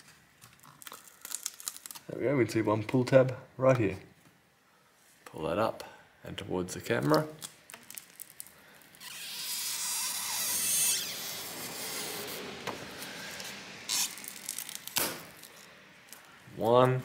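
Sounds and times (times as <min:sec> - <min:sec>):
adhesive tab pulled with rough hiss: 0:08.9 - 0:16.3.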